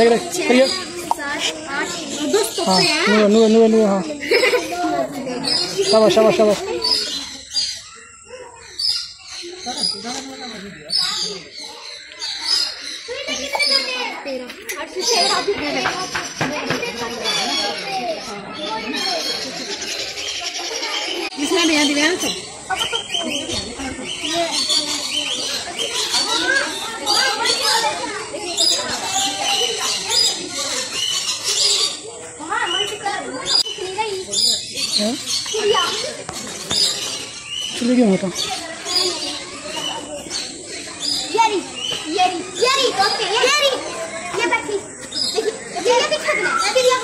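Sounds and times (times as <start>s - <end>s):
parakeets calling: 0.0s - 14.1s, 14.8s - 47.0s.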